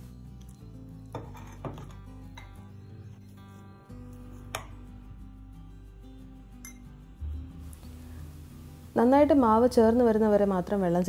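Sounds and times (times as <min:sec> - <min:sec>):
soft background music: 0:00.0 - 0:11.0
spoon clinking against glass bowl: 0:00.4 - 0:02.7, 0:06.6 - 0:06.9.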